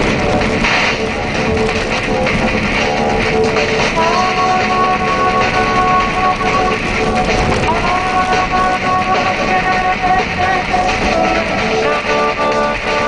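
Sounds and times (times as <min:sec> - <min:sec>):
car engine running: 0:00.0 - 0:13.0
music from car radio: 0:00.0 - 0:13.0.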